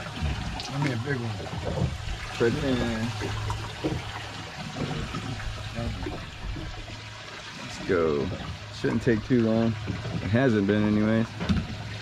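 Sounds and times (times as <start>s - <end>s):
low steady hum: 0.0s - 10.5s
water sloshing around boat hull: 0.0s - 12.0s.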